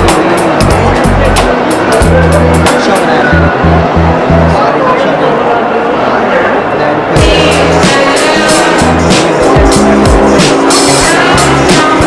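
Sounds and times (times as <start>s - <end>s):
background music with fast beat: 0.0s - 3.6s, 7.2s - 12.0s
deep bass notes: 0.0s - 4.6s, 7.2s - 12.0s.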